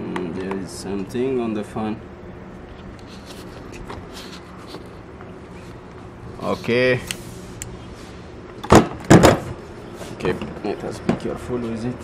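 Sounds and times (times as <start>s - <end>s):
handling rustles and scrapes: 2.7s - 8.3s.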